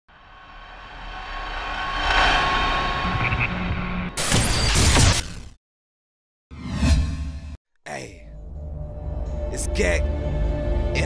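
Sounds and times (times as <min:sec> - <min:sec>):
rising whoosh with held tones: 0:00.1 - 0:04.2.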